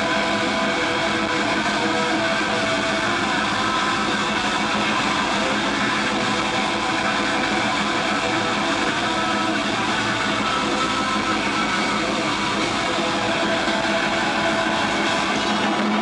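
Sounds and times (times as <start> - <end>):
electric guitar ringing notes: 0.0 - 16.0
metal band playing live: 0.0 - 16.0.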